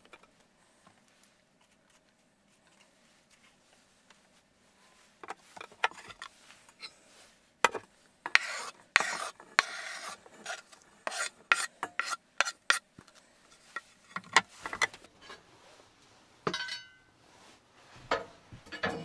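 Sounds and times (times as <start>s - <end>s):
knife scraping on wooden board: 8.3s - 12.8s
scraping into metal pot: 8.3s - 12.8s.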